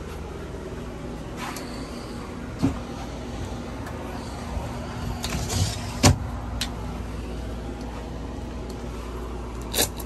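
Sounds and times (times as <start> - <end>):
air conditioner hum: 0.0 - 10.0.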